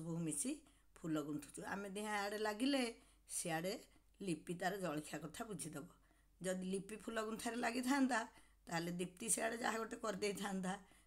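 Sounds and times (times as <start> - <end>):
woman speaking: 0.0 - 10.9.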